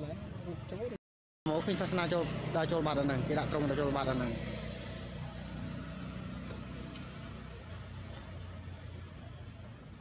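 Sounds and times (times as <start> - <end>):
vehicle engine hum: 0.0 - 10.0.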